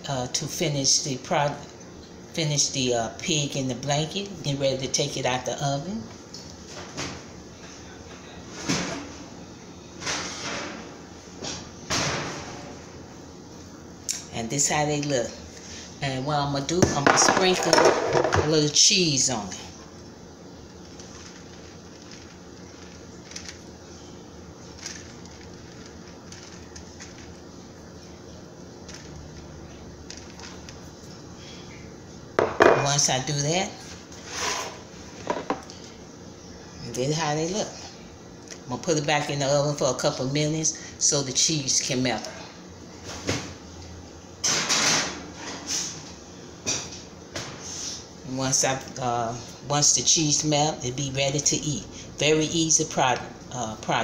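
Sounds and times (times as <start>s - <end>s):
woman speaking: 0.0s - 1.7s, 2.3s - 6.1s, 14.2s - 19.8s, 32.7s - 33.8s, 36.8s - 37.9s, 38.7s - 42.4s, 48.2s - 54.0s
kitchen room hum: 0.0s - 54.0s
baking tray sliding: 34.2s - 34.9s.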